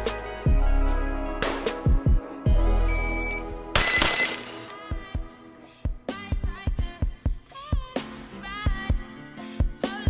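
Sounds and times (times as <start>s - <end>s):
background music: 0.0s - 10.0s
steel plate ringing: 3.8s - 4.8s.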